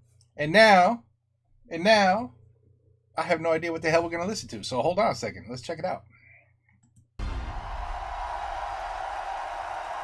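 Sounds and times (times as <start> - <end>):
large crowd cheering: 7.2 - 10.0.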